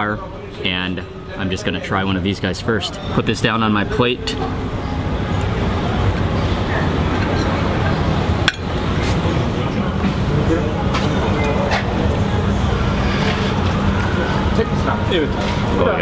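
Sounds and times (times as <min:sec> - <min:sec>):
traffic noise: 0:00.0 - 0:16.0
indistinct background voices: 0:04.0 - 0:15.8.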